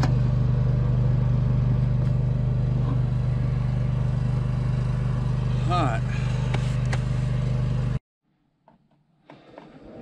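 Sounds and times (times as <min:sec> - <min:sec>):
engine idling: 0:00.0 - 0:08.0.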